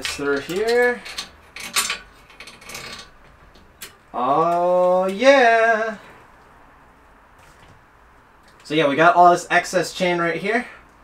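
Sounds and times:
bicycle chain rattling: 0.0 - 3.2.

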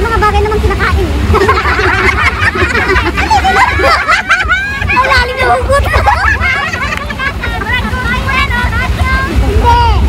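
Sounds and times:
people chattering: 0.0 - 10.0
steady low rumble: 0.0 - 10.0
people laughing: 1.2 - 8.5.

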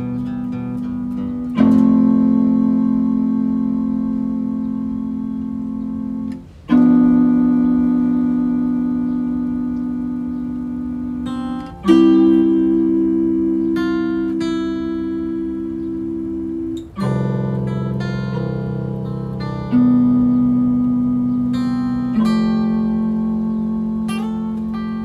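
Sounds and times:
guitar chords ringing: 0.0 - 25.0
picked high guitar notes: 0.0 - 25.0.

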